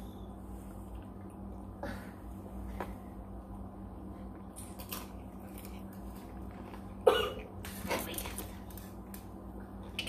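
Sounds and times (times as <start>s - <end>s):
person coughing: 7.0s - 7.5s.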